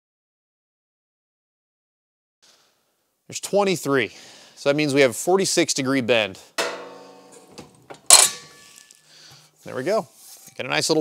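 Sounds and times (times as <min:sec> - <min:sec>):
metallic ring: 0:06.6 - 0:07.5, 0:08.1 - 0:09.0
sharp metal clank: 0:06.6 - 0:08.9.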